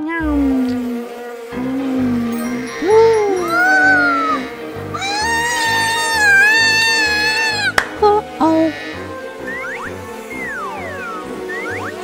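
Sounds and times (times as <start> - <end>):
cartoon flies buzzing: 0.0 - 12.0.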